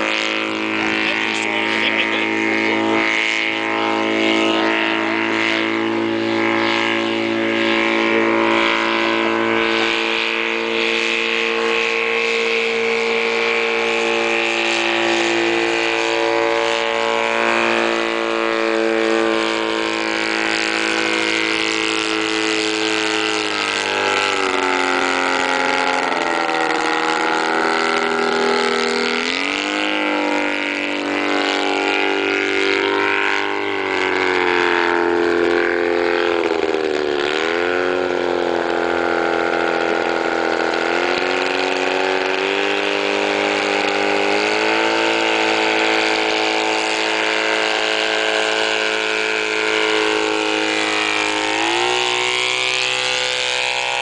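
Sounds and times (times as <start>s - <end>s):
autogyro engine overhead: 0.0s - 54.0s.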